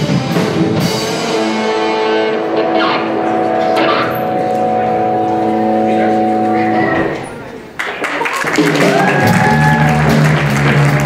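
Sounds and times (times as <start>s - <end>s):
rock band final chord: 0.0s - 7.2s
audience applause: 7.4s - 11.0s.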